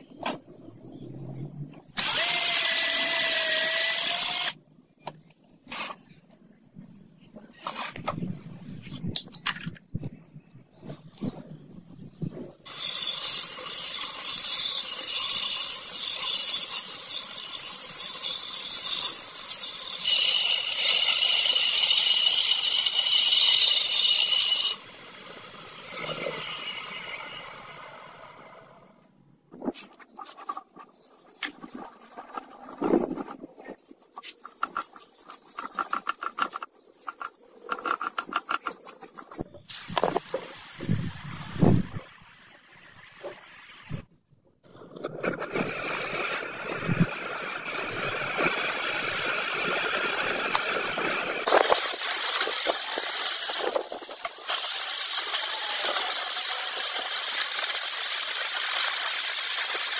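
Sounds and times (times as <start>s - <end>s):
sandpaper rubbing wood: 33.9s - 42.0s.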